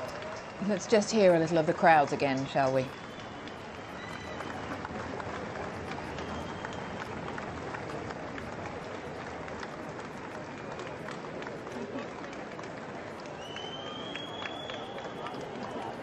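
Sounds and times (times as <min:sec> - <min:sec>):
crowd clapping: 0:00.0 - 0:16.0
crowd murmur: 0:00.0 - 0:16.0.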